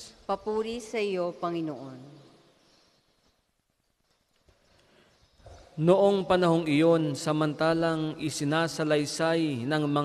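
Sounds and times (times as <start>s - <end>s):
man speaking loudly: 5.8s - 10.0s.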